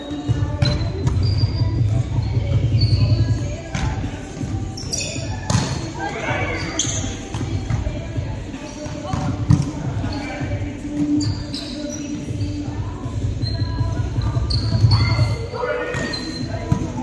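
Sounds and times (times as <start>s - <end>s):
sneakers squeaking on wooden floor: 0.0s - 8.0s, 8.6s - 17.0s.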